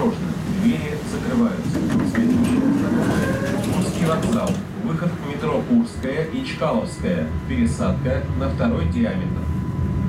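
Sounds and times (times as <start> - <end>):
tram interior low rumble: 0.0 - 10.0.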